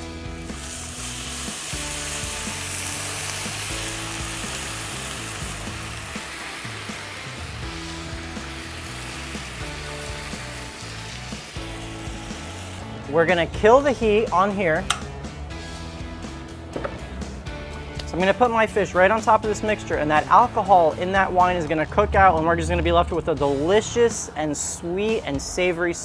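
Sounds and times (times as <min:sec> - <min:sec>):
wine sizzling in a hot pan: 0:00.0 - 0:13.1.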